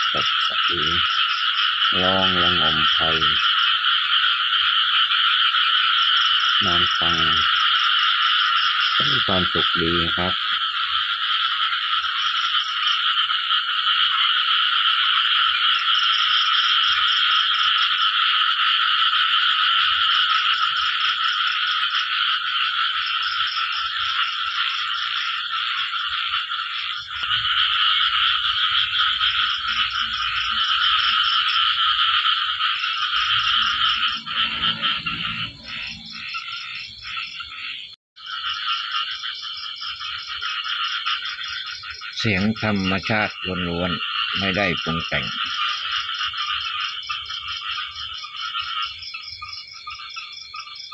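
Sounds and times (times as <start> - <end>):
fast pulsing frog call: 0.0 - 50.9
frogs calling chorus: 0.0 - 50.9.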